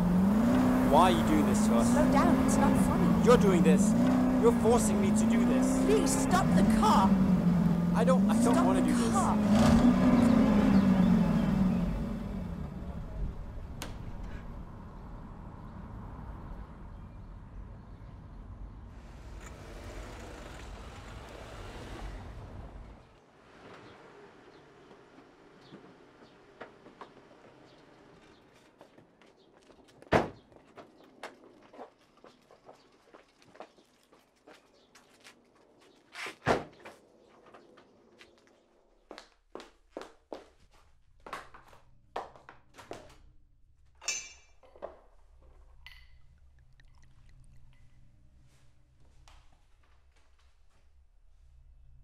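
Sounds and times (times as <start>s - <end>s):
car engine and tyres rumbling: 0.0s - 39.0s.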